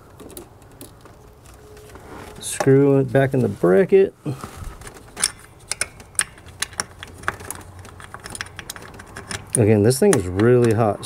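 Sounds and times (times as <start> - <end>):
plastic and metal clicks and rattles: 4.9 - 10.8.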